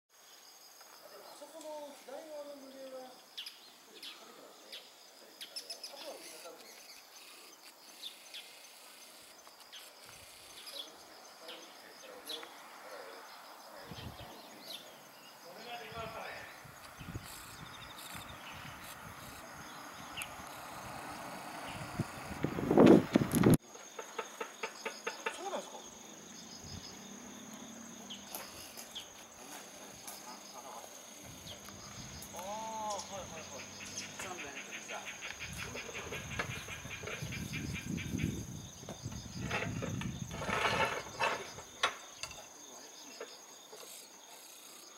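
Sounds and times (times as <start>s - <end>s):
high-pitched insect drone: 0.2s - 44.9s
bird chirps: 2.6s - 22.4s, 28.0s - 29.2s, 30.0s - 44.9s
gliding calls: 14.3s - 23.3s.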